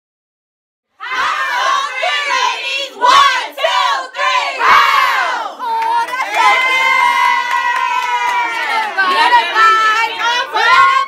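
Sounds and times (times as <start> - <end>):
girls shouting a cheer: 1.0 - 11.0.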